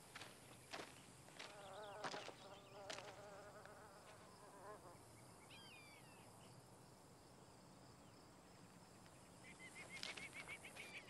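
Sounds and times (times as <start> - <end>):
soft footsteps: 0.0 - 4.3
flying insect buzzing: 1.4 - 5.0
bird chirp: 5.1 - 6.6, 9.1 - 11.0.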